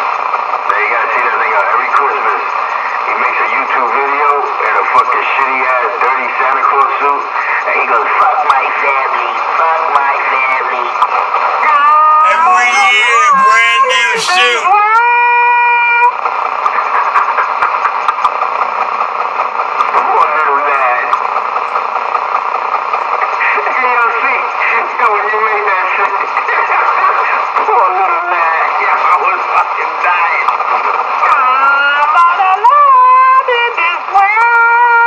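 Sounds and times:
indistinct voices talking: 0:12.2 - 0:14.8.

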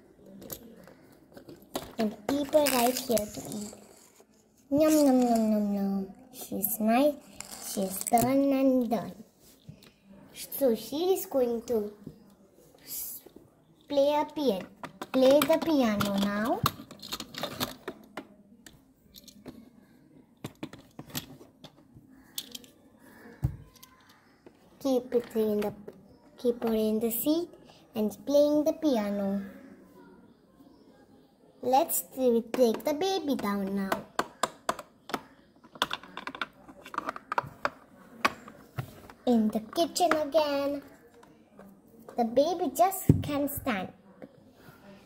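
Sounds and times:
clicks and taps of doll house pieces: 0:00.2 - 0:05.8, 0:07.0 - 0:08.7, 0:13.8 - 0:19.7, 0:20.4 - 0:27.0, 0:32.3 - 0:43.6.

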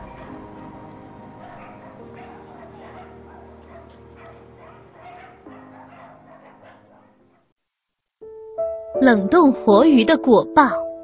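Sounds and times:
soft background music of chords: 0:00.0 - 0:06.9, 0:08.2 - 0:11.0
dogs barking and yipping: 0:00.0 - 0:07.5.

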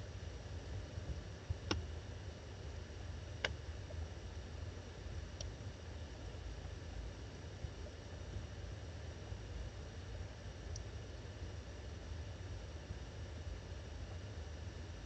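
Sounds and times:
low hum with faint hiss: 0:00.0 - 0:15.0.

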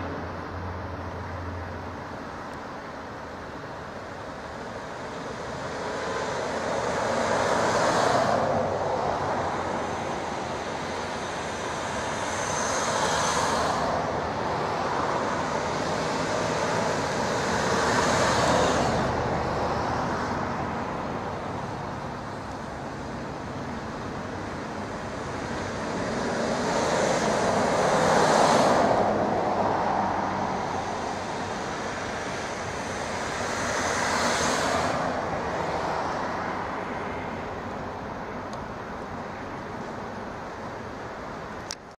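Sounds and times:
passenger train rumbling: 0:00.0 - 0:41.8
road traffic passing: 0:00.0 - 0:41.9.

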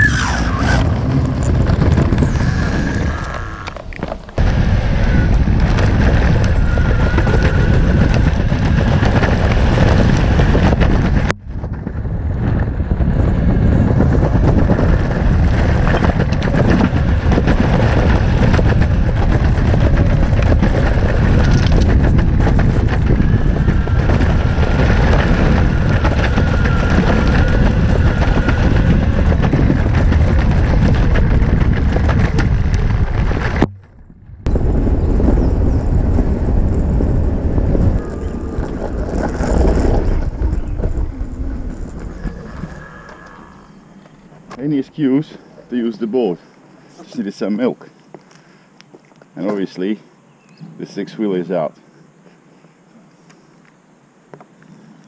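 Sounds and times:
faint whine: 0:00.0 - 0:11.6, 0:13.1 - 0:55.0
wind buffeting microphone: 0:00.0 - 0:46.3
skateboard wheels rumbling on pavement: 0:00.0 - 0:46.4.

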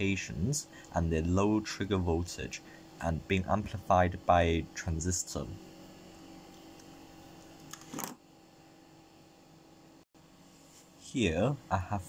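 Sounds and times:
small cooling fan hum: 0:00.0 - 0:12.0.

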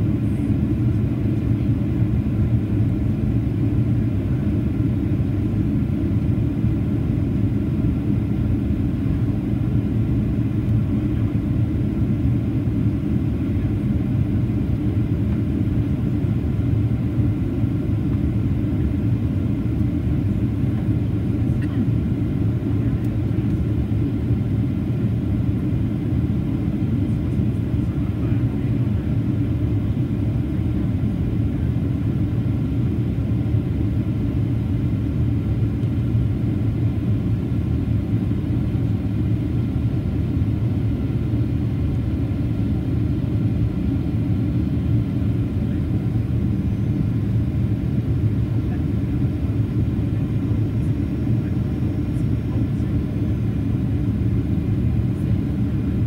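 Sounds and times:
jet engine cabin rumble: 0:00.0 - 0:56.0.

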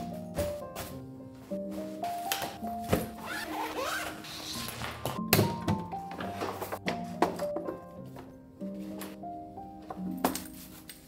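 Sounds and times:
background music: 0:00.0 - 0:11.0
zipper being pulled: 0:03.2 - 0:04.9.

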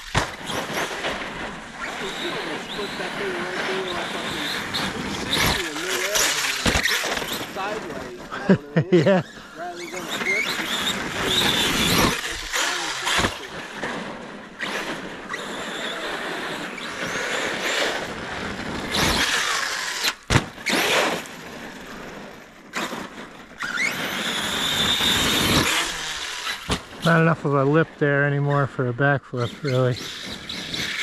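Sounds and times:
toy truck hitting ground: 0:00.0 - 0:02.2, 0:04.5 - 0:07.6, 0:10.1 - 0:27.1, 0:30.0 - 0:31.0
electric motor whining: 0:00.0 - 0:27.3, 0:29.5 - 0:31.0.

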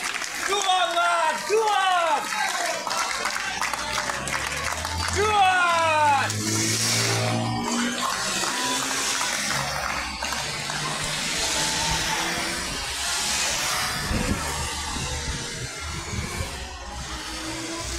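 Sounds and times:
cars passing on wet road: 0:02.9 - 0:14.3
motorcycle passing: 0:03.5 - 0:17.9.

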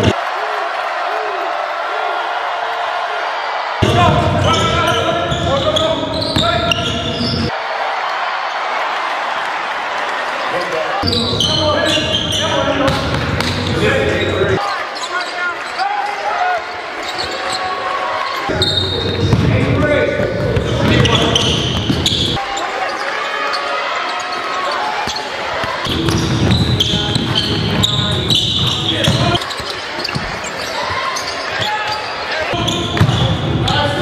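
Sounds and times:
basketball bouncing on court: 0:11.0 - 0:13.8, 0:18.5 - 0:22.4, 0:25.0 - 0:30.7, 0:32.6 - 0:33.8
indistinct voices: 0:18.4 - 0:34.0.

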